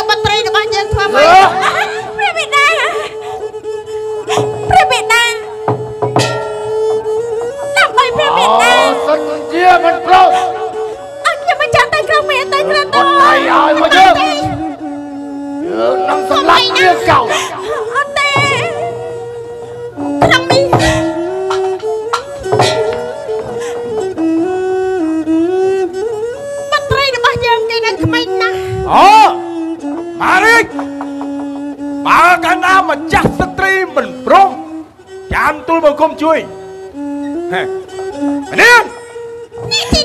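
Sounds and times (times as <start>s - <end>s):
bowed fiddle melody: 0.0s - 40.0s
theatre ensemble playing: 0.0s - 40.0s
sharp percussion strikes: 4.3s - 12.3s, 18.2s - 24.1s.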